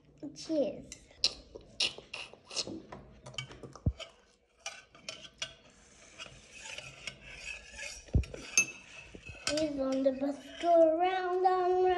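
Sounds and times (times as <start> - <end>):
metal spoon scraping metal bowl: 1.8 - 11.9.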